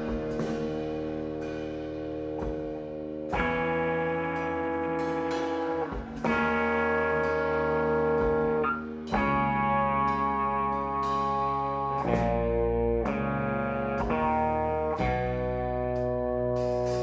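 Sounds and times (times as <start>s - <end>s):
ringing electric guitar chords: 0.0s - 17.0s.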